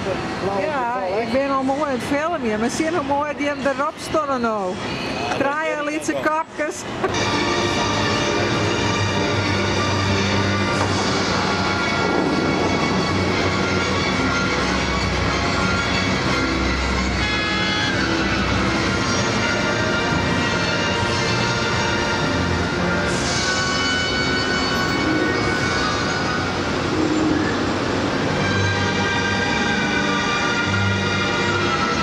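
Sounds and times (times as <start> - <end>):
music with long held notes: 7.1 - 32.0.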